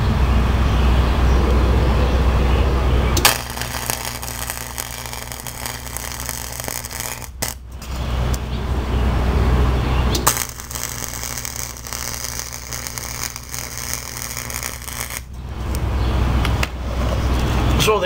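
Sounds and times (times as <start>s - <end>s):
welding arc crackling: 3.2s - 8.4s, 10.1s - 16.0s.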